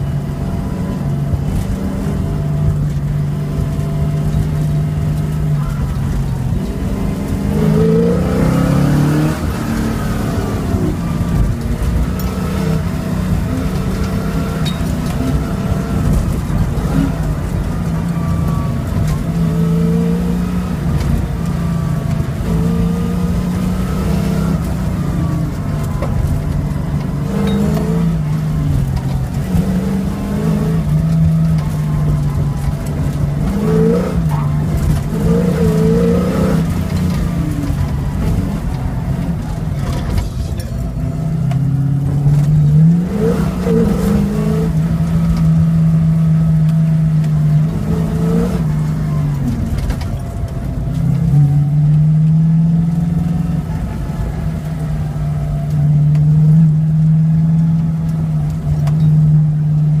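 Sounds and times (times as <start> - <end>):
car engine running hard: 0.0 - 60.0.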